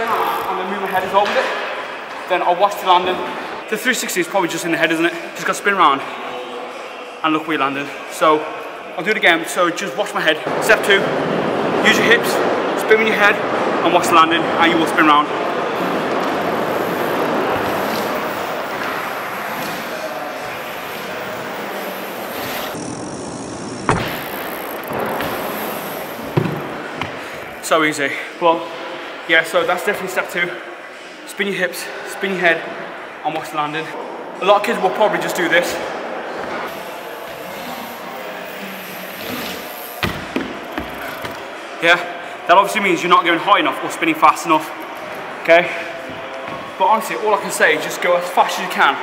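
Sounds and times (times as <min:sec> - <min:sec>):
bike tyres rolling on concrete: 0:15.5 - 0:22.9, 0:23.8 - 0:27.4, 0:36.7 - 0:41.5
bike landing thud: 0:23.9 - 0:25.6.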